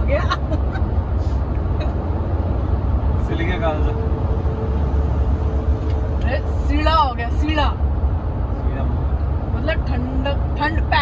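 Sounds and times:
truck cabin road rumble: 0.0 - 11.0.

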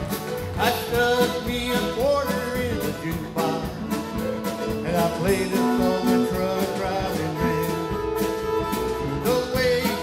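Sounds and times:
live country band playing: 0.0 - 10.0
man singing: 0.4 - 8.3, 8.9 - 10.0.

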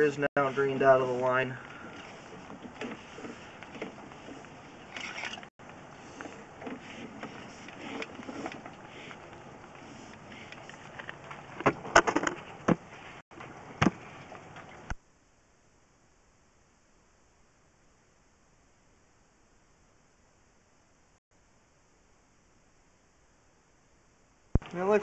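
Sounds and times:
cable rustling: 1.6 - 15.0.

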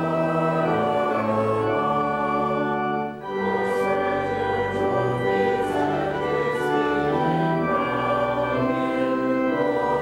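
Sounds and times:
organ: 0.0 - 10.0
voices singing a hymn: 0.0 - 10.0.

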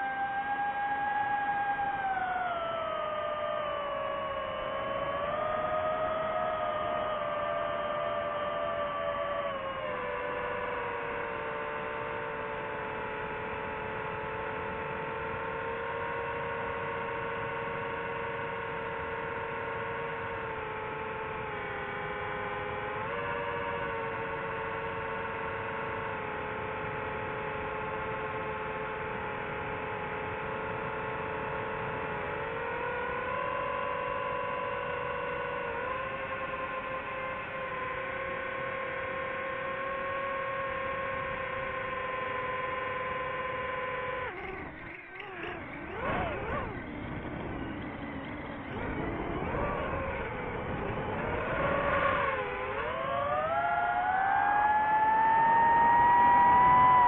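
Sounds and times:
drone propellers whining: 0.0 - 57.0.

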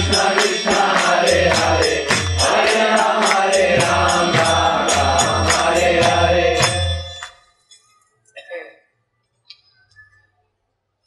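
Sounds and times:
people chanting: 0.0 - 7.3
hand cymbals: 0.0 - 7.4.

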